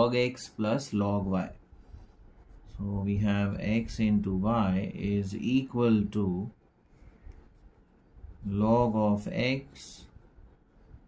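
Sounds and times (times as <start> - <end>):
person speaking: 0.0 - 1.6, 2.5 - 6.6, 8.3 - 10.3.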